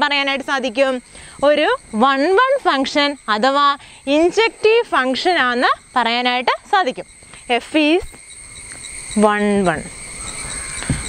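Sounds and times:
woman speaking: 0.0s - 8.2s, 9.2s - 9.9s
insects trilling: 0.0s - 11.0s.

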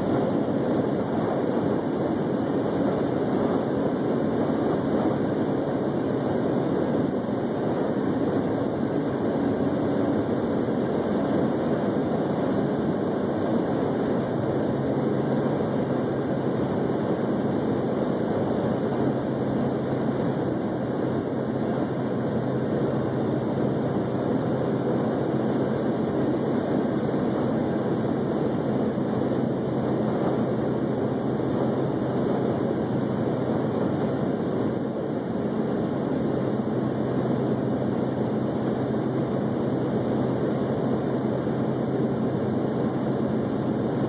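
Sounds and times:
low engine hum: 0.0s - 44.0s.

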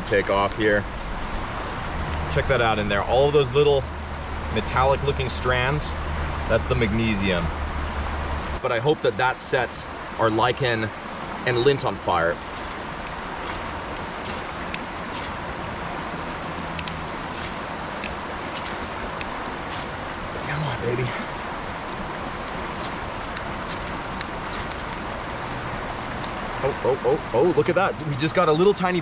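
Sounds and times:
river rushing: 0.0s - 29.0s
knife scraping ferro rod: 12.4s - 12.8s, 13.4s - 15.4s, 16.8s - 18.9s, 19.7s - 20.0s.

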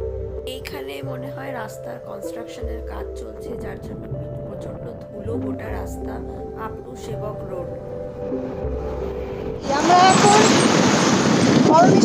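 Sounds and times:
background music: 0.0s - 12.0s
wind rushing over microphone: 6.4s - 12.0s.

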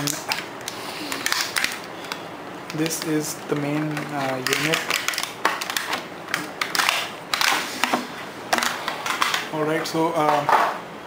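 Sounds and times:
plastic packaging crackling: 0.0s - 7.9s.

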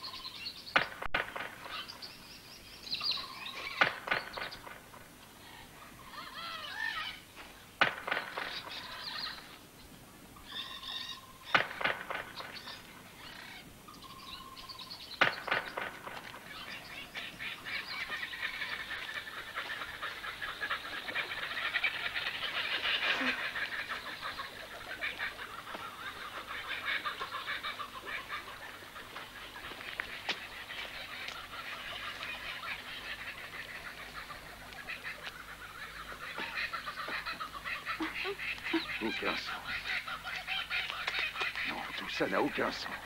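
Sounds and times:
chorus of wild animal calls: 3.0s - 9.6s, 10.4s - 43.0s.

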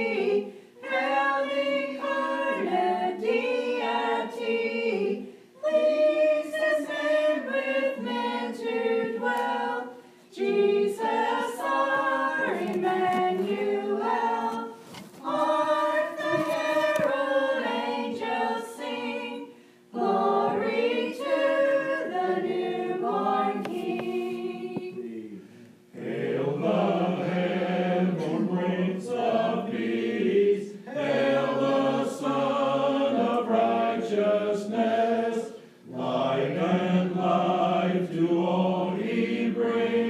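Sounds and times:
choir singing unaccompanied: 0.0s - 40.0s.

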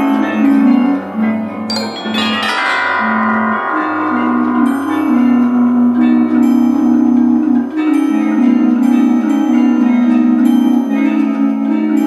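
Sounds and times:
barrel organ low notes: 0.0s - 12.0s
carillon chord ringing: 0.0s - 12.0s.

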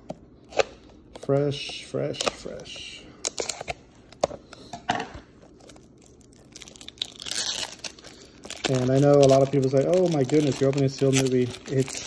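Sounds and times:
cellophane crinkling: 5.3s - 12.0s
cellophane wrap crackling: 5.4s - 12.0s.

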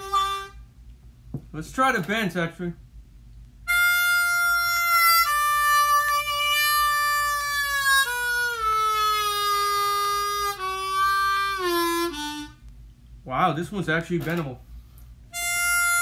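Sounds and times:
harmonica bent notes: 0.0s - 0.7s, 3.7s - 12.7s, 15.3s - 16.0s.

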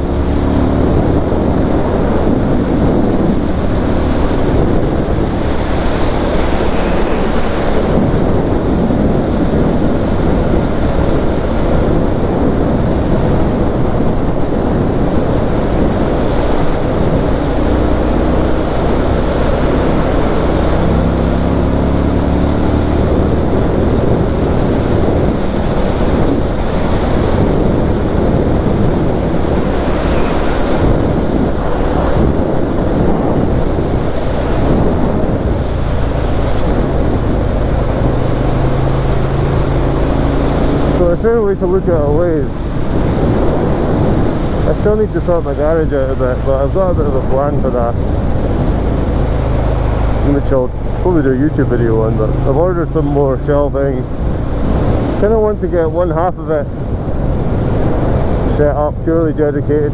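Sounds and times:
motorcycle engine at road speed: 0.0s - 59.9s
wind buffeting microphone: 0.0s - 59.9s.

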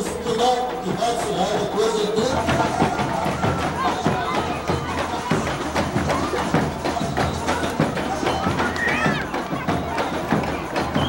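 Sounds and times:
samba percussion beat: 0.0s - 11.0s
voices: 0.0s - 11.0s.

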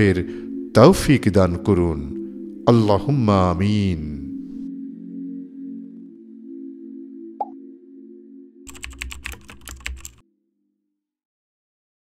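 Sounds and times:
ambient music drone: 0.0s - 10.1s
keyboard-like clicks: 8.7s - 10.2s.

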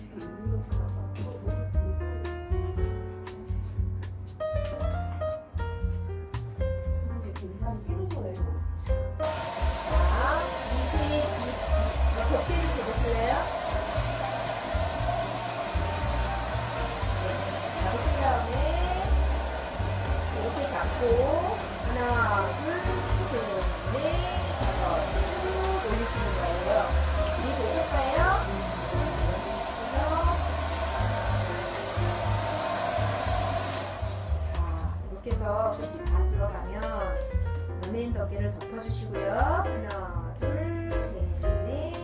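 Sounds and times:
background music with bass: 0.0s - 42.0s
hair dryer running: 9.2s - 35.4s.

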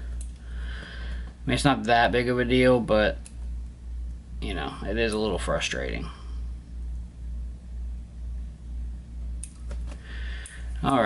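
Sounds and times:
pulsing low hum: 0.0s - 9.4s
scissors snipping: 9.4s - 10.6s.

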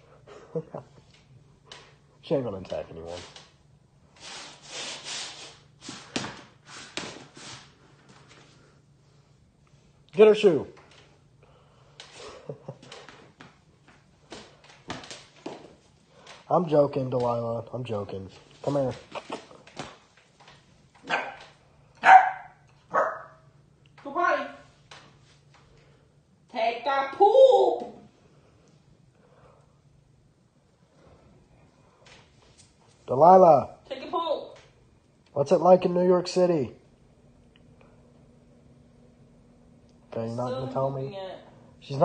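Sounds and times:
puppy barking: 21.0s - 23.4s.

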